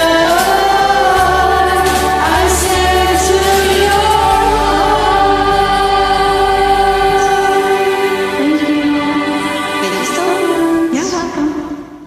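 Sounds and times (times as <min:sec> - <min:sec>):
karaoke backing track: 0:00.0 - 0:12.0
women singing a long note: 0:00.0 - 0:12.0.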